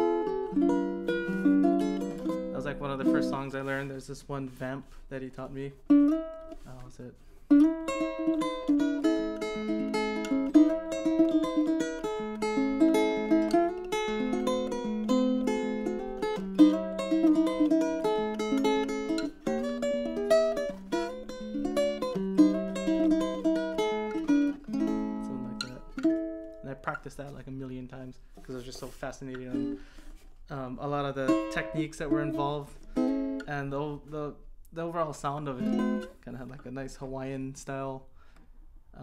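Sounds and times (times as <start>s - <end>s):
ukulele plucked melody: 0.0s - 3.9s, 4.5s - 6.9s, 7.5s - 27.8s, 28.4s - 34.4s, 35.1s - 36.6s.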